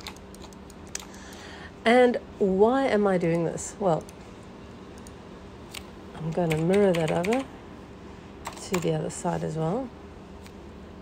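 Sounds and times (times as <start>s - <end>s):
computer keyboard keystrokes: 0.0s - 1.1s, 5.7s - 7.5s
faint steady hum: 0.0s - 11.0s.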